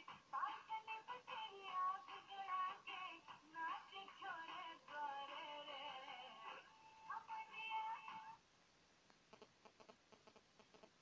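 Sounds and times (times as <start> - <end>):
tv music: 0.0 - 8.4.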